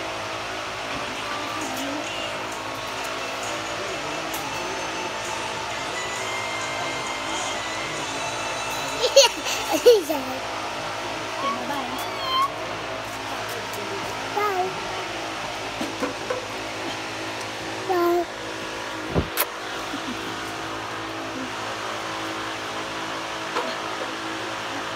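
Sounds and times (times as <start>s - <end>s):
steady background hum: 0.0s - 24.9s
toddlers squealing and babbling: 11.4s - 12.6s.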